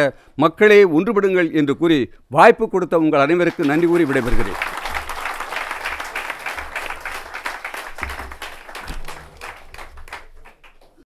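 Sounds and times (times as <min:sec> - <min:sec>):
audience applauding: 0:03.5 - 0:11.0.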